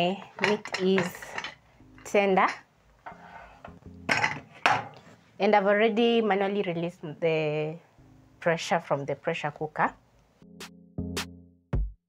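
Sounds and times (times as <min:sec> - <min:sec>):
faint background music: 0:00.0 - 0:10.6
metal lid clanking on counter: 0:00.4 - 0:01.6, 0:04.1 - 0:05.0.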